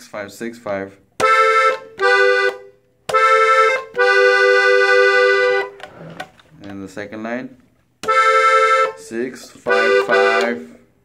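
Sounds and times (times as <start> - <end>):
accordion playing slow melody: 1.2 - 5.9, 8.0 - 10.8.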